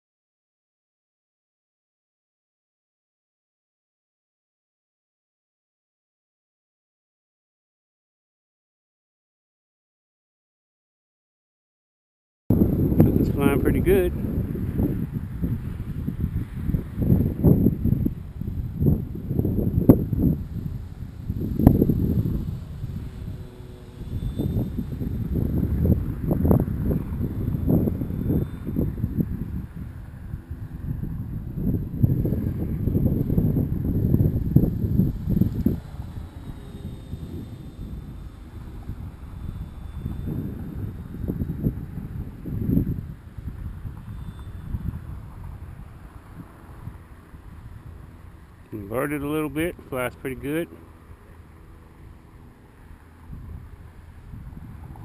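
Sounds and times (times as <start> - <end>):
faint high whine of model plane: 12.5 - 55.0
gusty wind on microphone: 12.5 - 55.0.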